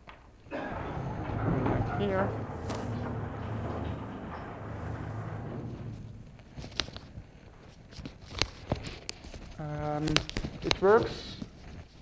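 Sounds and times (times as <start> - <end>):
blackboard panels sliding rumble: 0.5 - 8.6.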